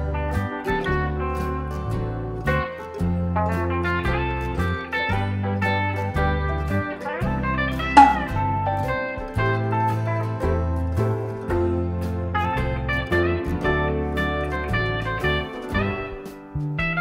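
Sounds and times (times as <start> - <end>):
guitar tune over bass line: 0.0 - 17.0.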